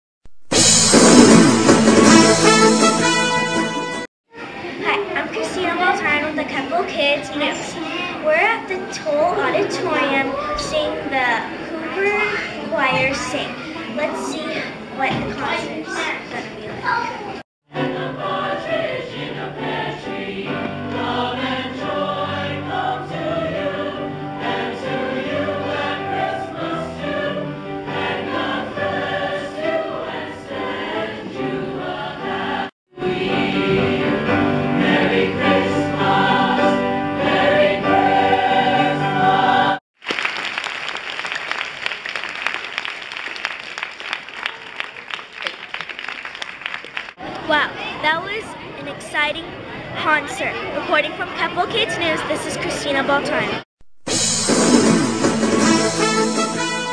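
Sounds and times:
mixed choir singing: 17.7s - 39.8s
audience applauding: 40.0s - 47.2s.

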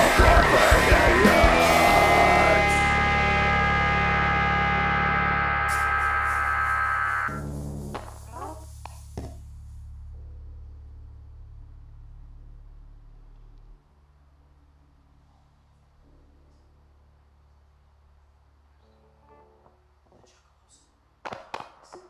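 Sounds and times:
heavy rock band final chord: 0.0s - 7.9s
electric guitars ringing: 0.0s - 8.5s
low amplifier hum: 0.0s - 21.2s.

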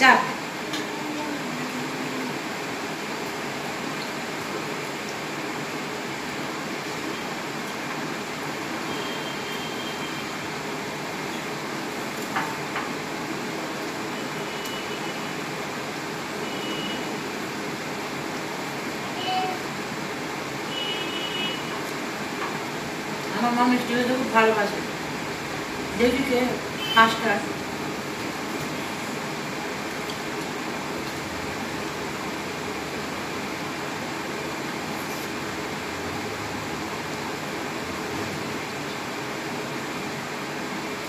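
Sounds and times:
room noise hiss: 0.0s - 41.0s.

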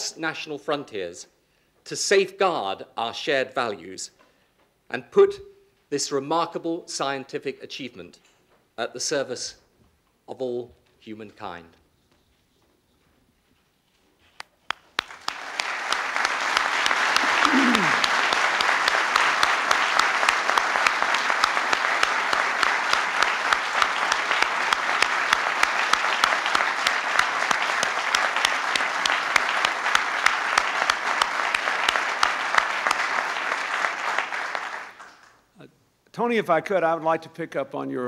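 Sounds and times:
audience applauding: 14.7s - 35.4s.

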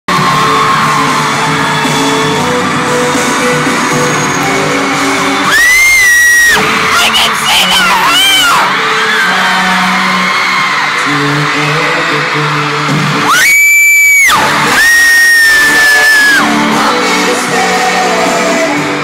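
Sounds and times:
live pop concert music: 0.1s - 19.0s
high-pitched screaming: 3.7s - 11.1s.

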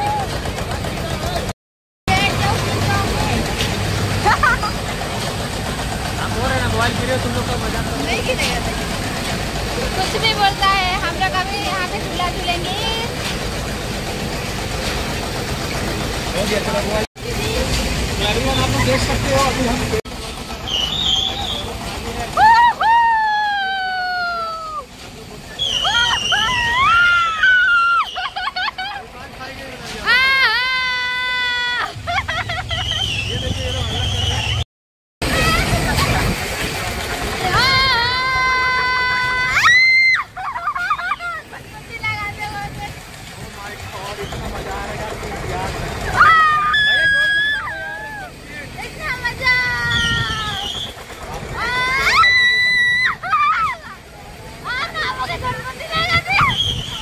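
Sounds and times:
people laughing: 4.0s - 5.2s, 25.7s - 33.5s, 40.1s - 41.8s
people screaming: 20.6s - 24.9s, 25.5s - 28.9s, 30.0s - 34.6s, 37.5s - 41.6s, 46.0s - 48.6s, 49.5s - 54.0s, 56.0s - 57.0s
wind rumbling on microphone: 49.6s - 52.0s, 55.2s - 57.0s.

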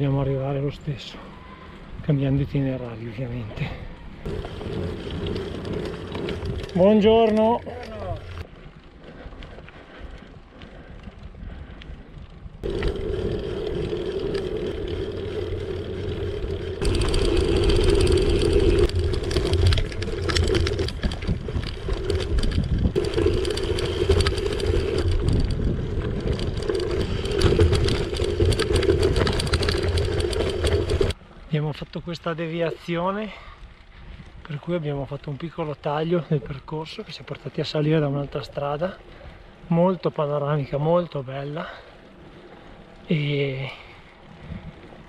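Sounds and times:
bike tyres crunching on gravel: 4.1s - 31.2s.

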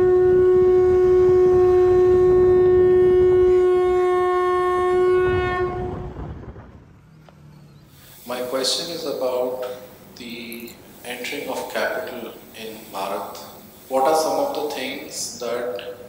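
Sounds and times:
long horn-like tone: 0.0s - 6.8s
low rumble: 1.0s - 8.2s.

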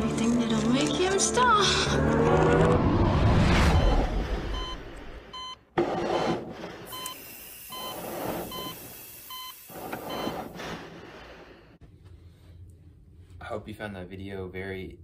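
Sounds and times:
patient monitor beeps: 3.8s - 4.8s, 6.2s - 10.4s.

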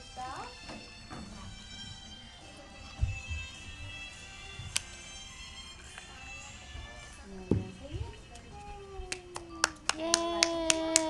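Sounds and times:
hands clapping in steady beat: 9.1s - 11.0s.

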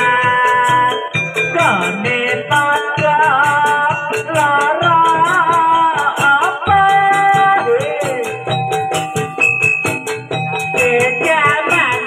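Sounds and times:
drumming: 0.0s - 12.0s
steady jingling beat: 0.0s - 12.0s
wavering high melody: 0.0s - 12.0s.

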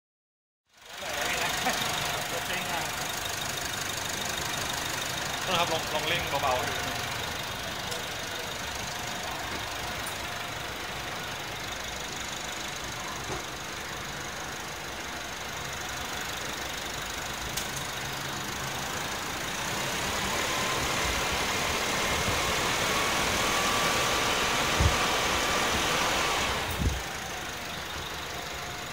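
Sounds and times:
diesel engine idling and revving: 0.7s - 28.9s
faint turbo whine: 0.7s - 28.9s.

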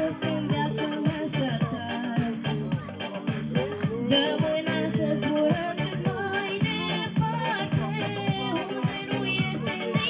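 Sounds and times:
girl singing into microphone: 0.0s - 2.9s, 4.0s - 10.0s
backing music with steady beat: 0.0s - 10.0s.

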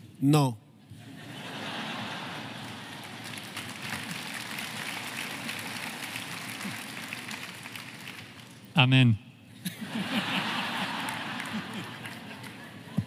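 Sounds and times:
audience applauding: 1.9s - 8.6s, 10.2s - 13.0s.

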